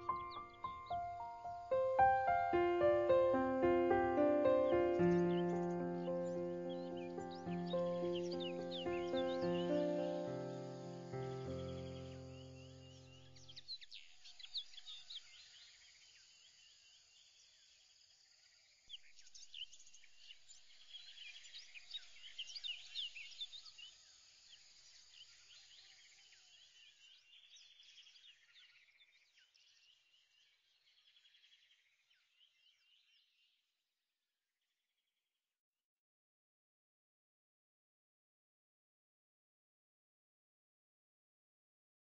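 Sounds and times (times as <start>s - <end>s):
held music chords: 0.0s - 11.9s
small birds chirping: 0.0s - 17.8s, 18.9s - 33.6s.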